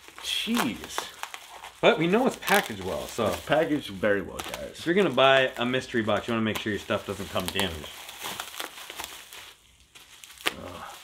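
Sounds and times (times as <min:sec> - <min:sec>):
packaging crinkling: 0:00.0 - 0:11.0.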